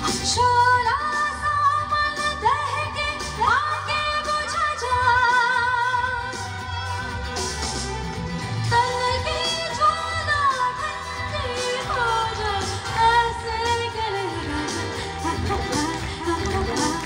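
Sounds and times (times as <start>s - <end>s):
amplified singing: 0.0s - 17.0s.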